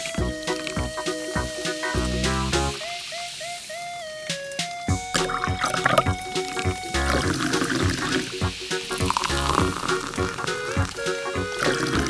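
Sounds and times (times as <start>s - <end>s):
background music with beat: 0.0s - 12.0s
soda water fizzing and splashing: 0.0s - 12.0s.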